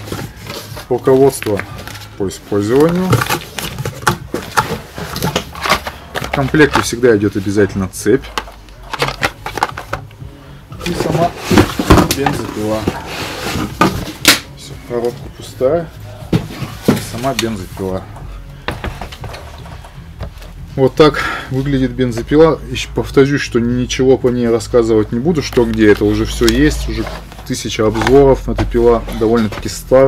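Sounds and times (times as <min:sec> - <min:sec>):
paper and cardboard rustling: 0:00.0 - 0:10.1, 0:10.8 - 0:14.2, 0:16.2 - 0:18.0, 0:24.4 - 0:30.0.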